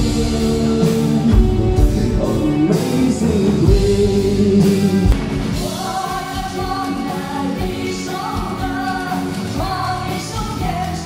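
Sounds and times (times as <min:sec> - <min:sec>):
live band playing: 0:00.0 - 0:11.0
women singing: 0:05.6 - 0:11.0.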